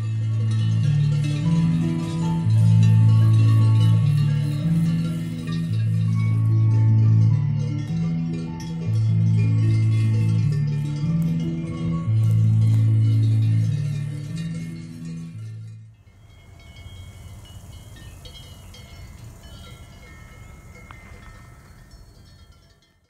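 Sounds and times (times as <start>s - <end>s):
electronic keyboard music: 0.0s - 16.1s
faint high ringing tones: 0.0s - 23.0s.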